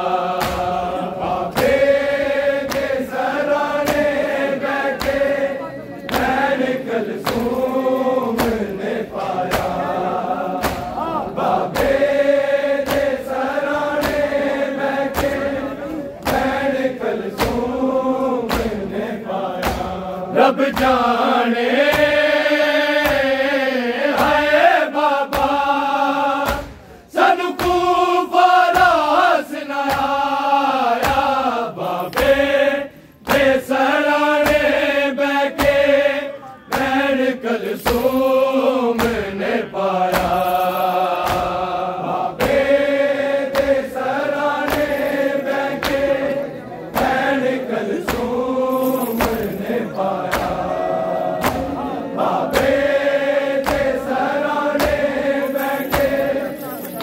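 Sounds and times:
men chanting a lament: 0.0s - 57.0s
rhythmic chest-beating: 0.0s - 57.0s.

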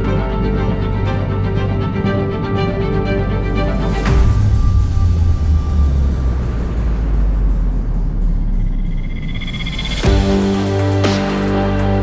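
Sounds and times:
hissing rumbling background music: 0.0s - 12.0s.

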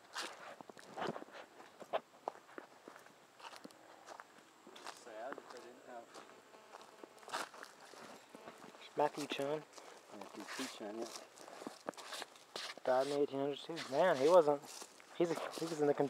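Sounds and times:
footsteps on dirt and dry leaves: 0.0s - 16.0s.

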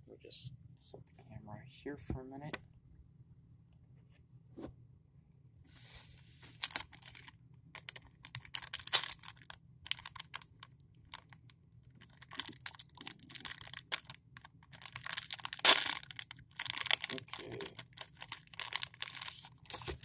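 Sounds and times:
plastic wrapper crinkling: 6.4s - 20.0s.

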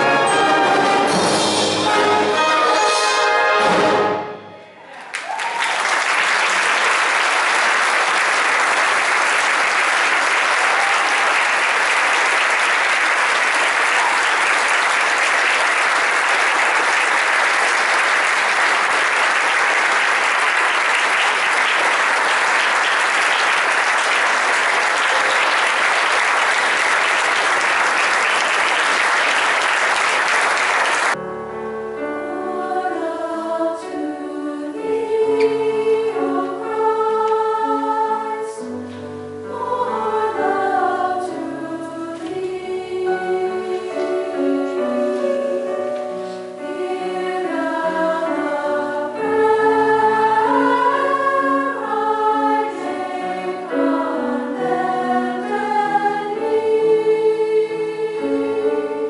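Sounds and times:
mixed choir singing: 0.0s - 4.1s, 32.0s - 59.0s
audience applauding: 5.0s - 31.2s.

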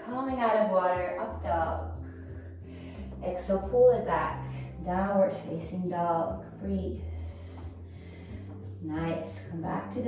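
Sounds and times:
slow breath through throat: 7.1s - 8.8s.

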